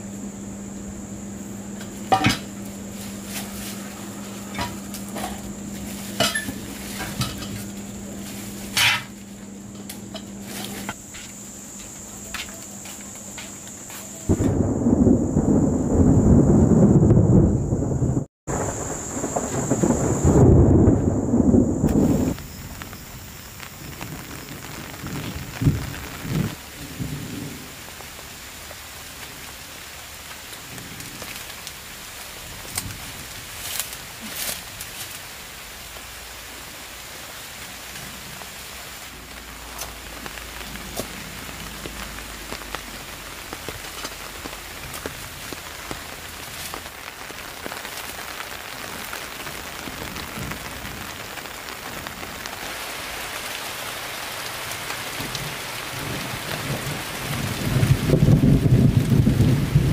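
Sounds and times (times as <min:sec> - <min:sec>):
low hum: 0:00.0 - 0:27.6
rain patter: 0:00.0 - 0:59.9
thunder rumbling: 0:14.2 - 0:34.8, 0:37.8 - 0:59.9.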